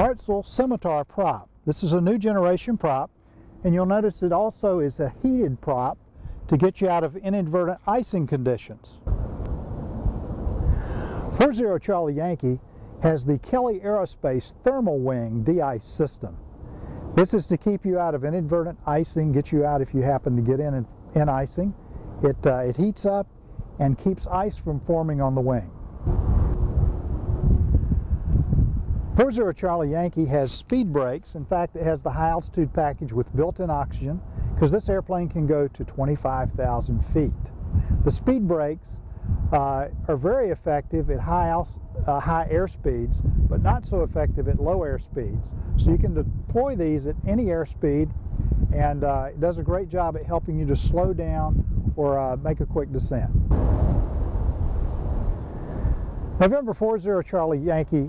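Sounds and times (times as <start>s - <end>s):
wind buffeting microphone: 9.0s - 14.1s, 16.2s - 30.1s, 32.2s - 58.0s.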